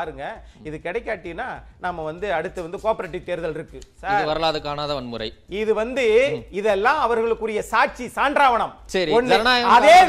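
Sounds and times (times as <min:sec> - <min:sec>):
person talking: 0:05.7 - 0:06.8, 0:09.0 - 0:10.0.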